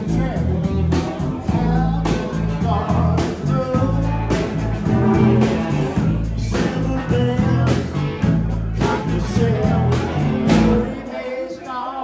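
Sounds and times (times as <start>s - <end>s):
bass line: 0.0s - 11.0s
electric guitars: 0.0s - 11.2s
drum beat: 4.4s - 7.0s.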